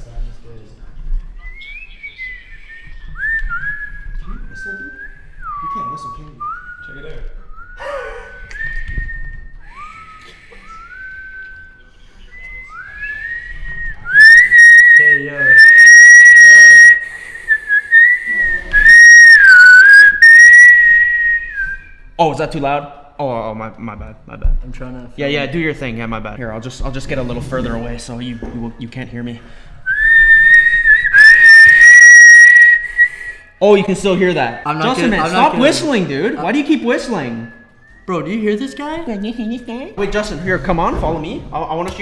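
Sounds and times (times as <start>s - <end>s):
person whistling: 1.4s - 22.1s, 29.9s - 33.6s.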